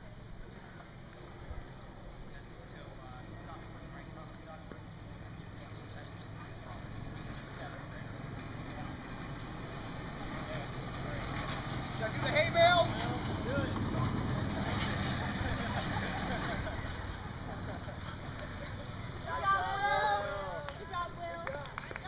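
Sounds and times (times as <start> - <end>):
spectator shouting: 19.2 - 20.7.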